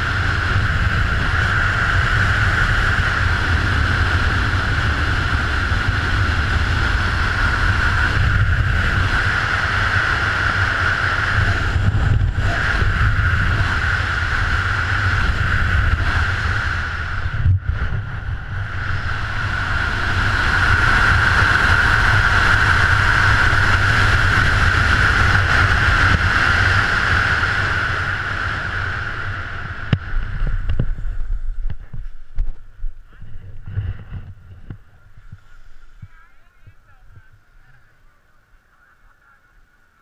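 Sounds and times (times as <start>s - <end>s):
wind rushing over camera: 0.0s - 38.7s.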